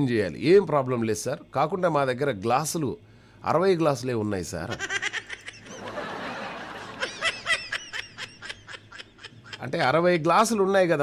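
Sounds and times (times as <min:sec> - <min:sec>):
person laughing: 0:04.7 - 0:09.7.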